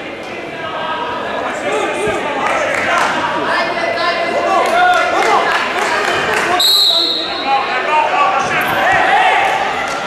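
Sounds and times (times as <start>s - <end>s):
voices shouting in echoing hall: 0.0s - 10.0s
referee's whistle: 6.6s - 7.5s.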